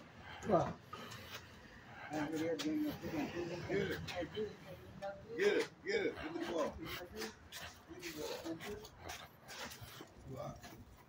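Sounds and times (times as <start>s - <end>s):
steps and rustling: 2.2s - 11.0s.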